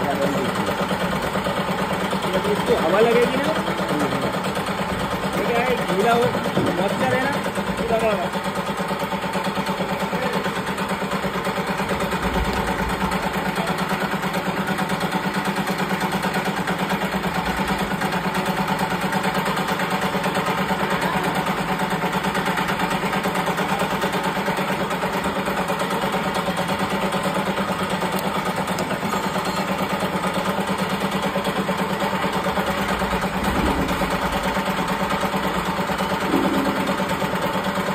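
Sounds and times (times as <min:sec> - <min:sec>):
grain machine motor droning: 0:00.0 - 0:37.9.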